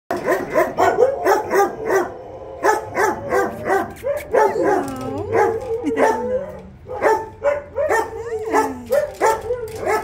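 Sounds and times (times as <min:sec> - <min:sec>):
dog barking rapidly: 0:00.1 - 0:10.0.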